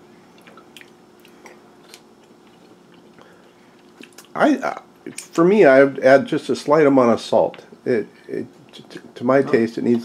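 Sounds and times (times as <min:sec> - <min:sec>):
low steady hum: 0:00.0 - 0:10.0
person chewing: 0:00.3 - 0:04.4.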